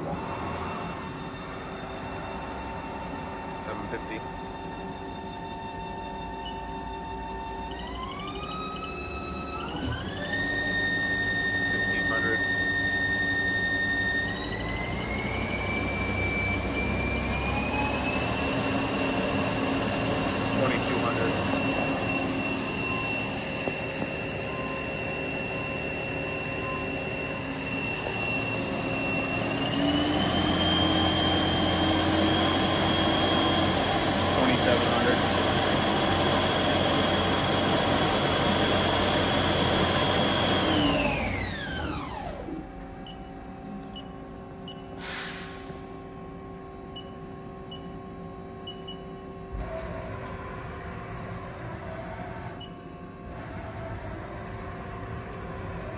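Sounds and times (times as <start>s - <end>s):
lathe spindle whining: 0.0s - 43.0s, 53.2s - 55.9s.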